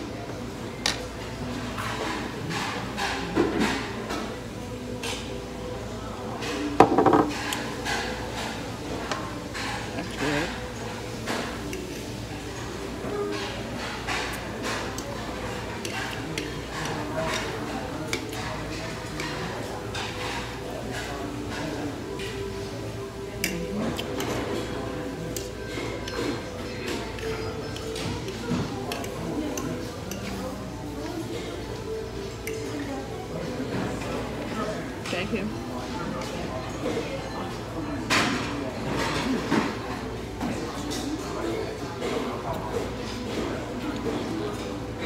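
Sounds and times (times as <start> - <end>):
indistinct chatter: 0.0 - 45.0
forks clinking on plates: 9.5 - 34.2.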